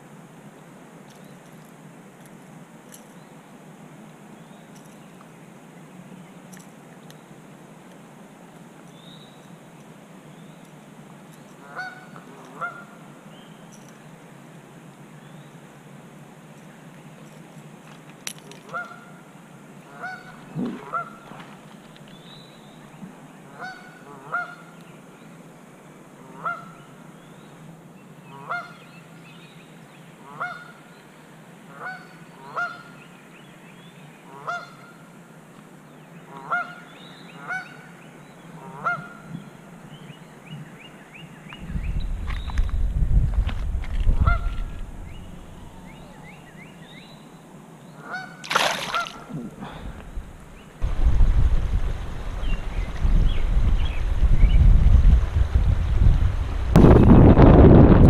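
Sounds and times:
steady background hiss: 0.0s - 57.5s
honking bird calls: 44.2s - 47.1s, 48.0s - 49.9s.

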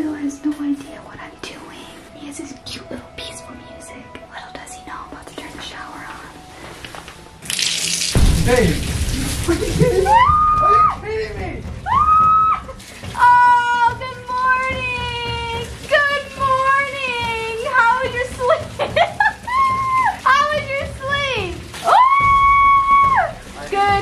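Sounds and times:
shower spraying into bathtub: 6.5s - 24.0s.

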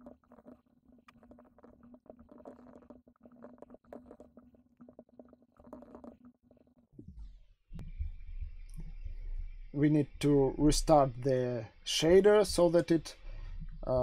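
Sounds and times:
faint steady hum: 0.0s - 14.0s
low rumble: 7.0s - 14.0s
man's voice: 9.8s - 13.1s.

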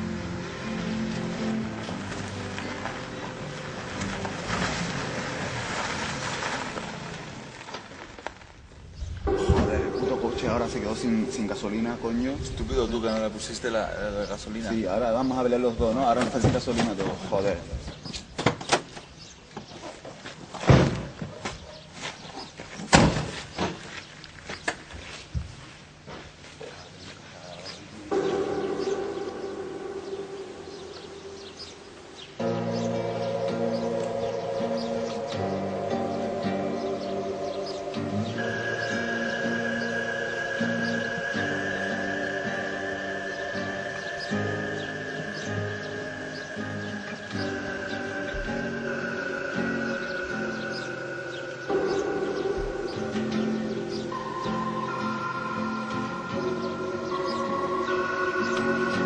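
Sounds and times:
background music: 0.0s - 7.5s, 9.2s - 17.6s, 28.0s - 59.0s
tyres crunching on gravel: 0.0s - 18.4s, 19.0s - 29.1s.

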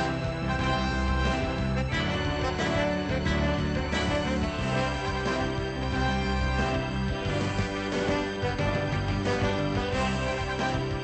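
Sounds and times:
instrumental film music: 0.0s - 11.0s.

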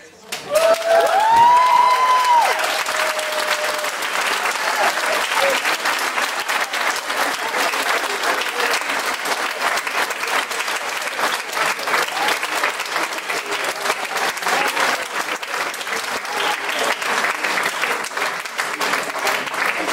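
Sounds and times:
audience applauding: 0.3s - 19.9s.

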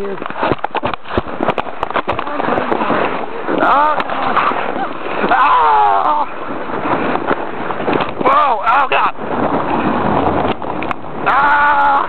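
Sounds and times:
sled scraping on snow: 0.0s - 8.2s
sharp clicks and knocks: 0.1s - 2.3s.

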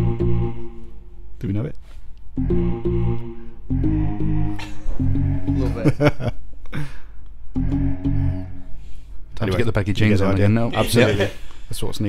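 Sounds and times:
synthesiser chords over bass: 0.0s - 1.2s, 2.4s - 6.1s, 7.5s - 8.9s.

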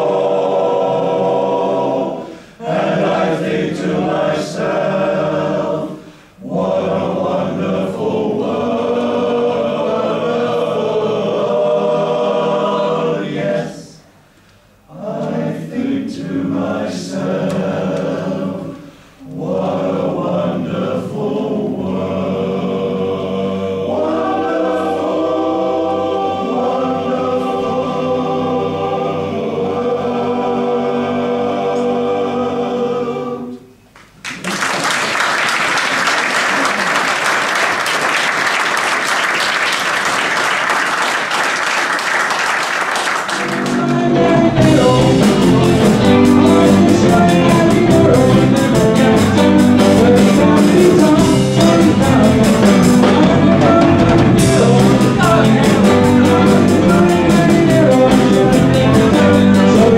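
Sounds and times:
male choir singing: 0.0s - 14.1s, 14.9s - 33.8s, 43.2s - 59.9s.

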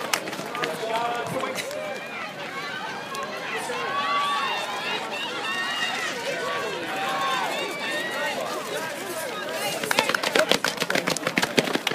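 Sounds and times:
spectators chattering and calling out: 0.0s - 11.9s
quick running footfalls: 6.9s - 11.9s.

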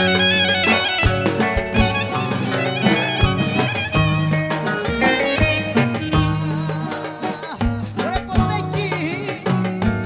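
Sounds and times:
clarinet melody: 0.0s - 6.8s
live folk dance band: 0.0s - 10.0s
low drum beats: 0.0s - 10.0s.

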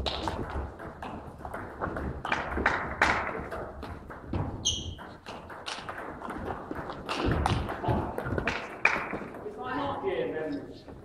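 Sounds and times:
footwork thuds: 0.0s - 9.4s.

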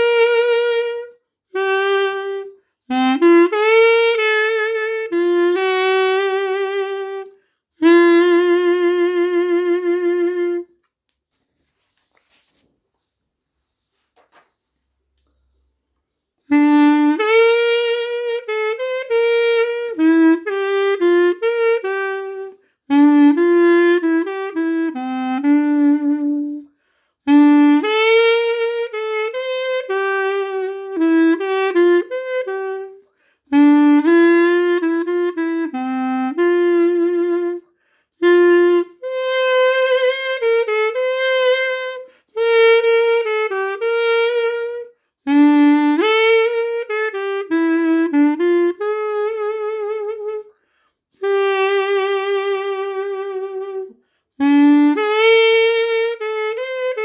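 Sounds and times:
reed pocket sax melody: 0.0s - 12.6s, 15.6s - 57.0s.

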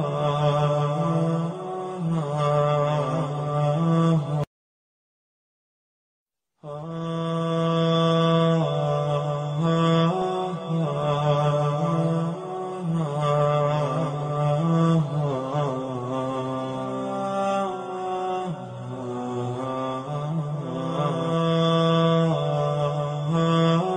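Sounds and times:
man chanting: 0.0s - 4.5s, 6.6s - 23.9s.

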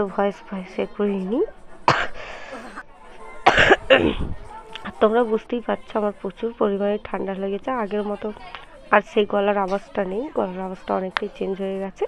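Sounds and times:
woman coughing: 1.9s - 2.8s, 3.4s - 4.3s.

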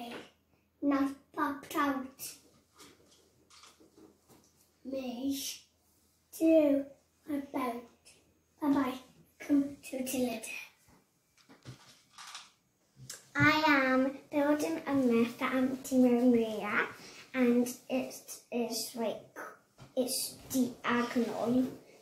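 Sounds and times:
young child talking: 0.0s - 2.4s, 4.8s - 5.6s, 6.3s - 8.0s, 8.6s - 10.8s, 13.1s - 21.8s.

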